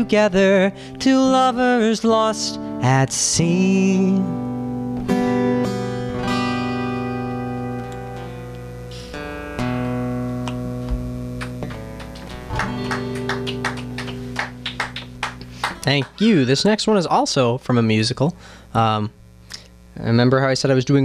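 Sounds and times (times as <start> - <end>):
acoustic guitar strumming: 0.0 - 17.3.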